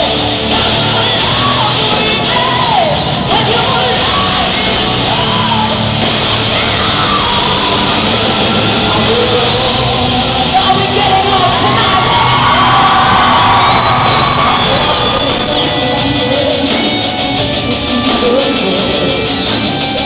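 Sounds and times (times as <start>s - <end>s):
hard rock band playing live: 0.0s - 20.0s.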